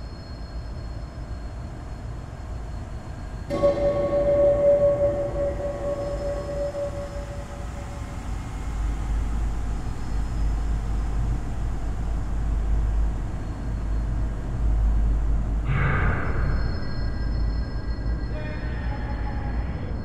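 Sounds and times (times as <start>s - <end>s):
deep low rumbling drone: 3.4s - 20.0s
single ringing tone: 3.5s - 8.2s.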